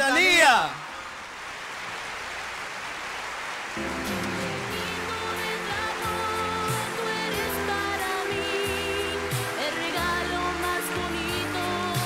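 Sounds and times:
audience applauding: 0.0 - 11.1.

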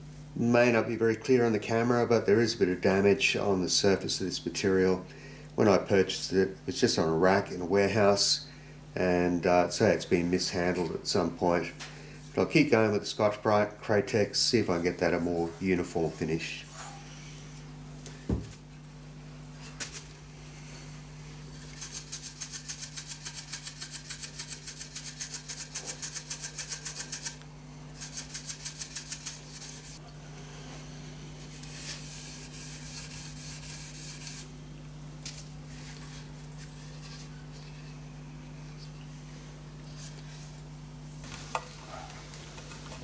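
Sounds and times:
abrasive pad rubbing on metal: 21.4 - 27.4, 28.0 - 30.0, 31.3 - 34.5.

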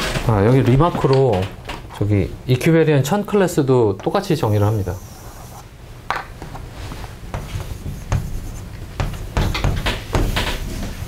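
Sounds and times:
chalk writing on blackboard: 4.4 - 5.6, 7.4 - 10.4.

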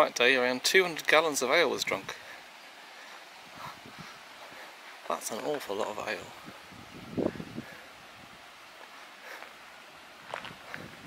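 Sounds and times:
light wind: 0.0 - 11.0.

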